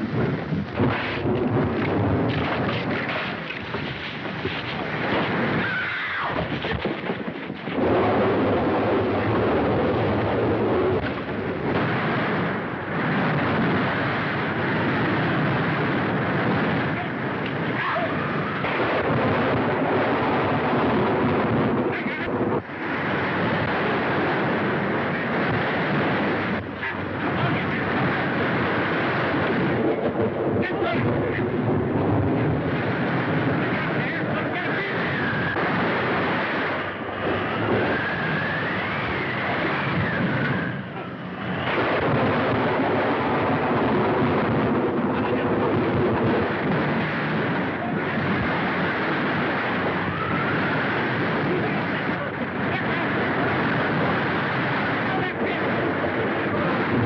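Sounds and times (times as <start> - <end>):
crashing seas: 0.0 - 57.0
loud wind: 0.0 - 57.0
whistling wind: 0.0 - 57.0.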